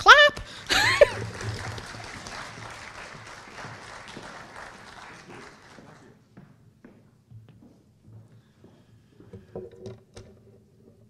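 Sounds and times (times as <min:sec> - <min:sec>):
audience applauding: 0:00.4 - 0:06.3.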